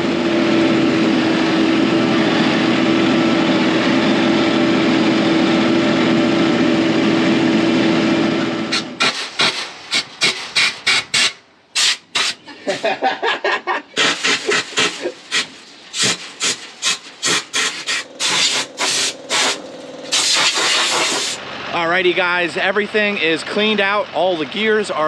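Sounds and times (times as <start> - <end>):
tractor engine running: 0.0 - 13.2, 13.9 - 25.0
scraping in metal seed box: 14.0 - 21.0.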